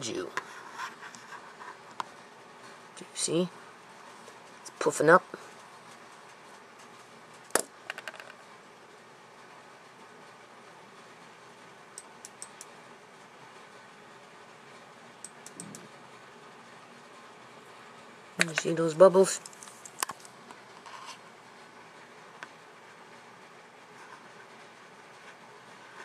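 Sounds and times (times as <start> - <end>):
low room noise: 0.0 - 26.0
sharp clicks: 12.0 - 12.7, 15.2 - 15.9.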